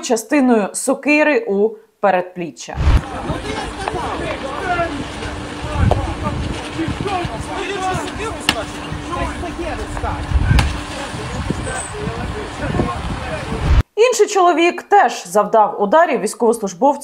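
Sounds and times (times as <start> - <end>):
low rumbling on microphone: 2.8 - 13.8
people talking over one another: 2.8 - 13.8
steady hum: 2.8 - 13.8.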